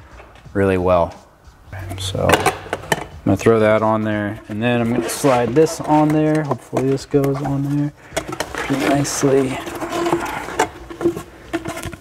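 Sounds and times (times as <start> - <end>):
hose knocking and scraping on duct: 1.8 - 12.0.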